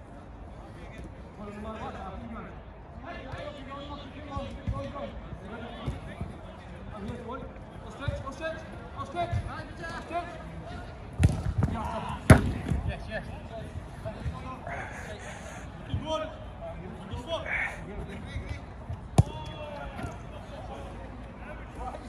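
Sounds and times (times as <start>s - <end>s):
football being kicked: 11.2s - 11.7s, 19.1s - 19.6s.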